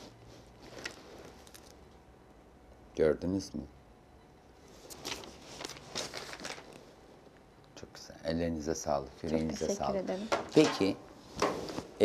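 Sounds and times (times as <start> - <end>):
picture frame rustles and scrapes: 0.0 - 1.8, 4.7 - 7.0, 11.2 - 12.0.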